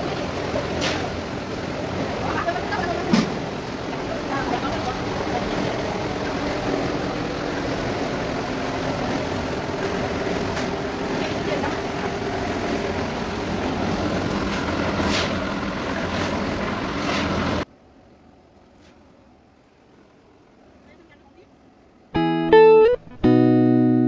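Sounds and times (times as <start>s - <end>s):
gas burner roaring: 0.0s - 17.7s.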